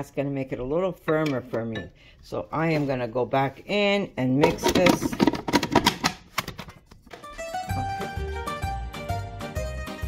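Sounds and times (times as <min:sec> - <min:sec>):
plastic bowl and lid clatter: 0:04.4 - 0:07.2
plucked-string background music: 0:07.1 - 0:10.0.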